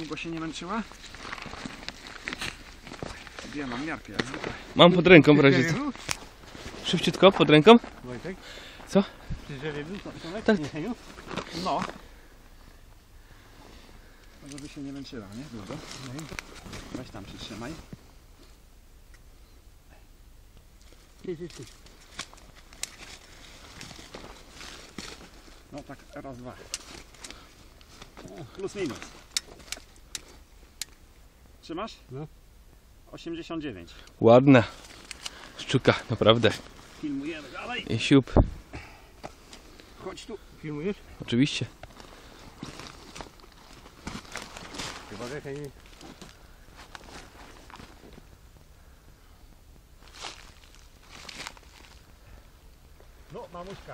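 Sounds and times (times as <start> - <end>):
footsteps in dry grass and leaves: 0.0 - 18.4, 20.8 - 31.1, 34.6 - 49.0, 49.8 - 53.9
fish tail flapping on dry leaves: 50.0 - 52.1.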